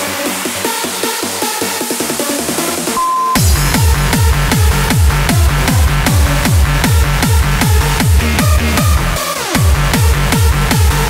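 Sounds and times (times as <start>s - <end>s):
dance music with kick drum: 0.0s - 11.0s
high held tone: 3.0s - 8.6s.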